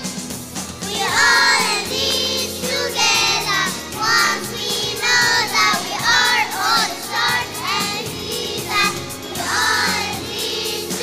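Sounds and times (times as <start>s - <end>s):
instrumental accompaniment: 0.0s - 11.0s
children singing into microphones: 0.8s - 11.0s.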